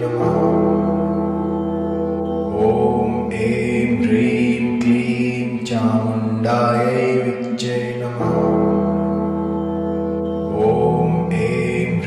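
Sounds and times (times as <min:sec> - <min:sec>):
person chanting in a sung voice: 0:00.0 - 0:01.2, 0:02.4 - 0:09.1, 0:10.5 - 0:12.0
low drone: 0:00.0 - 0:12.0.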